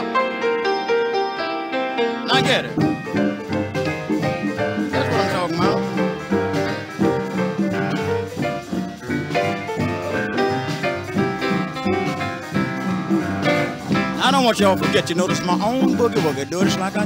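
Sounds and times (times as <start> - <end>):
boogie-woogie piano: 0.0 - 17.0
guitar chords: 0.0 - 17.0.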